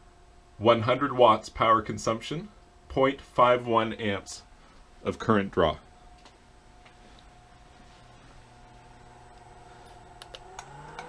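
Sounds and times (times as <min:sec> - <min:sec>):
pool pump humming with whine: 0:00.0 - 0:11.0.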